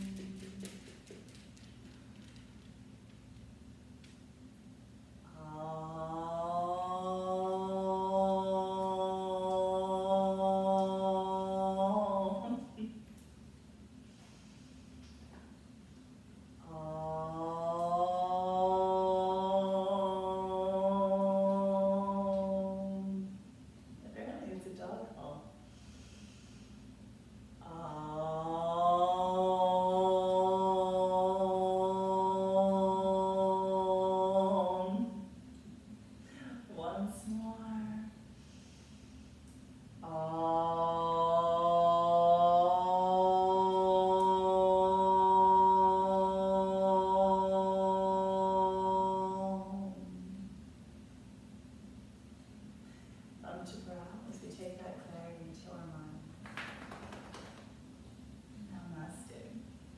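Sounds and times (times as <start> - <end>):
woman chanting om: 0.0 - 1.4, 5.2 - 13.0, 16.6 - 26.6, 27.6 - 35.5, 36.2 - 38.9, 40.0 - 50.8.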